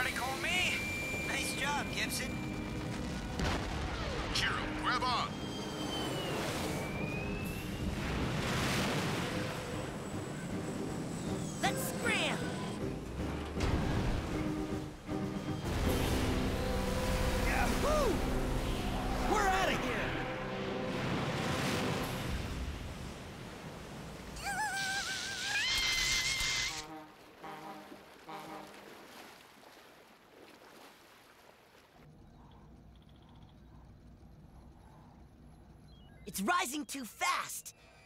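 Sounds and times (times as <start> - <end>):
cartoon water rushing: 0.0 - 2.6, 15.7 - 23.1, 24.2 - 29.2
dramatic music: 9.2 - 22.5.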